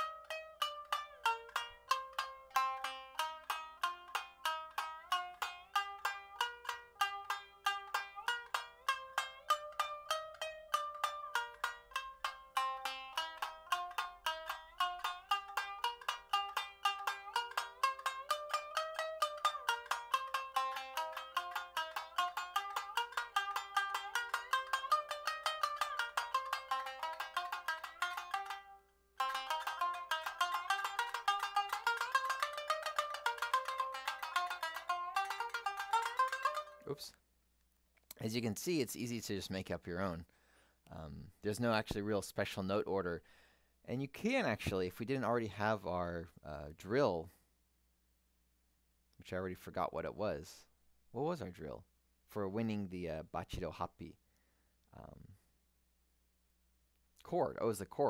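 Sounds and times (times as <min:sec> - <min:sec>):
shamisen rapid plucked notes: 0:00.0 - 0:37.2.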